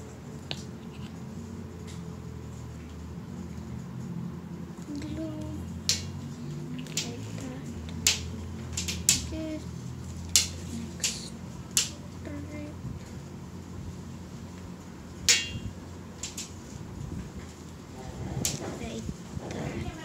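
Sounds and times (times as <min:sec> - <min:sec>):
low background hum: 0:00.0 - 0:20.0
sharp irregular clicks: 0:06.8 - 0:09.4.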